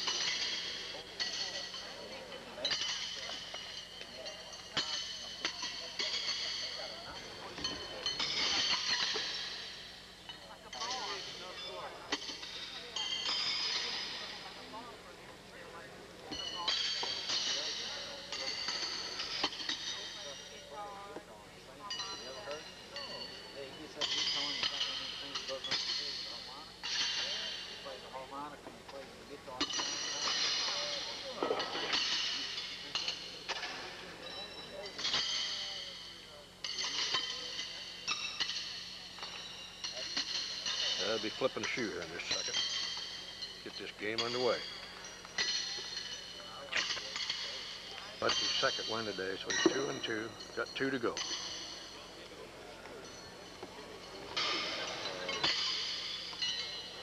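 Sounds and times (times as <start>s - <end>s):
horseshoes clanging on metal stakes: 0.0s - 15.0s, 15.7s - 57.0s
crowd chatter: 0.0s - 40.2s, 40.9s - 57.0s.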